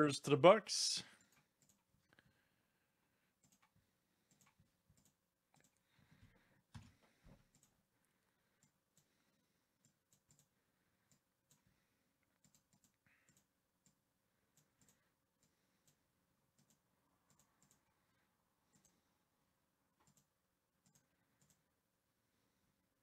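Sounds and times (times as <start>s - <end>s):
mouse and keyboard clicks: 12.4s - 14.0s, 20.0s - 21.6s.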